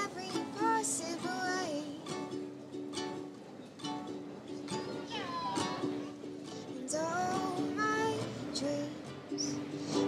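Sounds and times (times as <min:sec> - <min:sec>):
ukulele strumming: 0:00.0 - 0:10.0.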